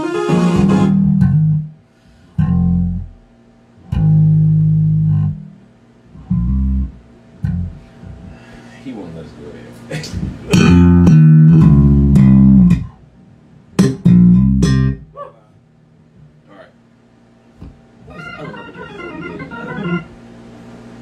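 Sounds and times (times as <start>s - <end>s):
amplified bass notes: 0.0s - 1.8s, 2.4s - 8.4s, 10.2s - 13.1s, 13.7s - 15.2s.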